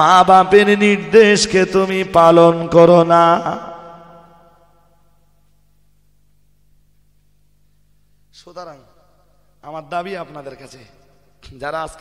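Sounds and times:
man chanting in sung style: 0.0 - 4.6.

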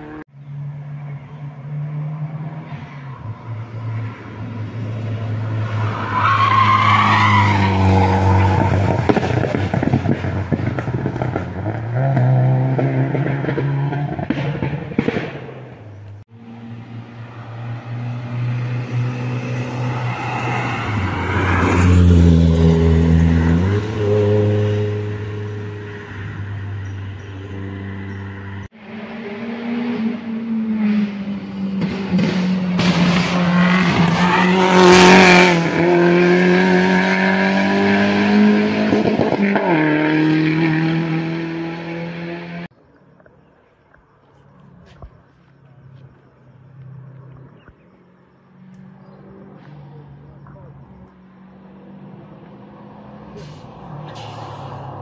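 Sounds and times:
rally car engines revving: 0.0 - 42.7, 46.0 - 55.0.

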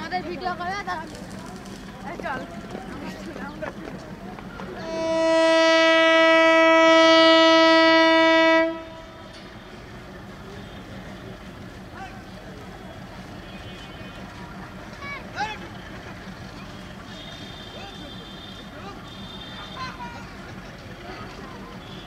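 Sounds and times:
railway station hum: 0.0 - 22.0
locomotive horn blast: 4.8 - 11.8, 12.9 - 14.7, 16.7 - 20.0, 21.3 - 22.0
people calling: 8.6 - 22.0.

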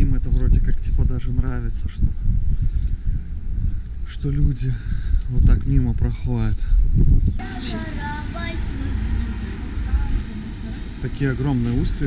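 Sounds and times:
steady low street rumble: 0.0 - 12.0.

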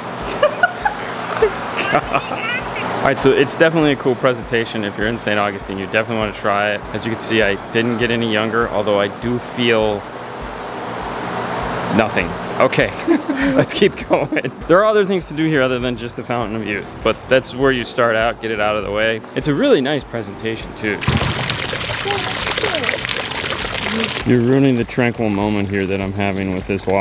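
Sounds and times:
fountain water splashing: 21.0 - 27.0.

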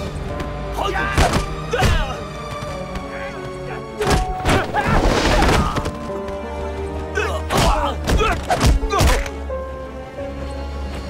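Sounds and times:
background music: 0.0 - 11.0
punches and body blows: 1.1 - 2.1, 7.5 - 9.3.

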